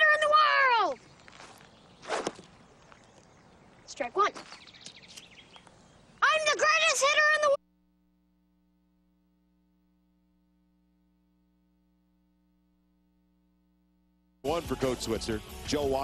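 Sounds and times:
child calling out loudly: 0.0s - 1.0s, 6.2s - 7.6s
faint outdoor background: 0.0s - 16.0s.

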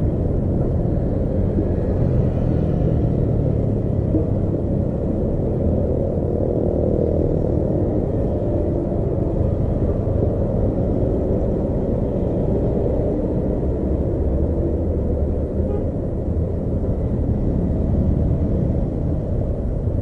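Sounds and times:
vehicle engine and road noise: 0.0s - 20.0s.

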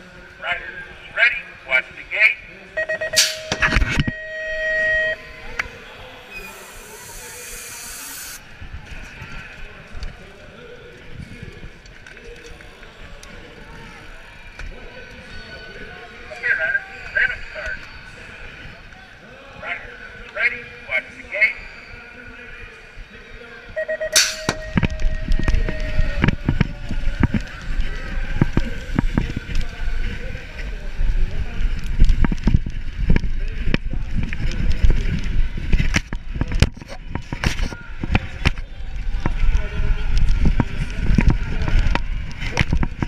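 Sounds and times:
electronic start tone: 2.8s - 5.6s, 23.8s - 26.2s
metal gate clattering: 3.1s - 4.6s, 24.2s - 25.3s
pneumatic hiss: 6.4s - 8.4s.

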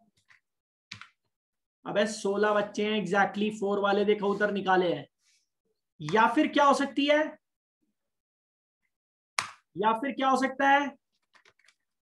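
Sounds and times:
person speaking: 1.8s - 7.5s, 9.6s - 11.2s.

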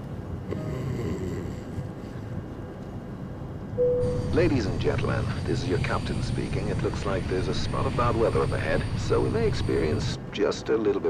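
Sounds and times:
airliner cabin rumble: 0.0s - 11.0s
short steady tone: 3.8s - 4.4s.

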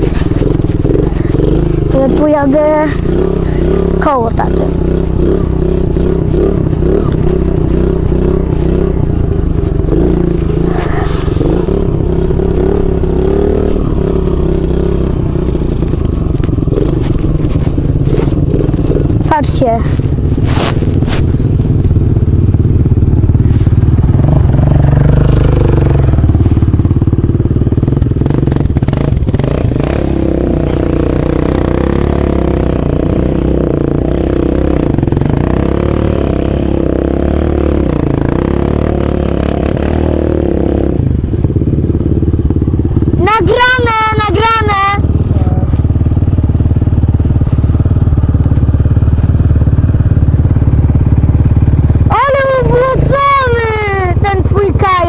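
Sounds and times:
off-road vehicle engine: 0.0s - 55.0s.

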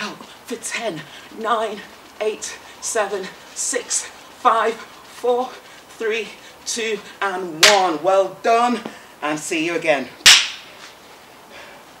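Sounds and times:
sharp hand clap: 7.6s - 7.9s, 10.2s - 10.7s.

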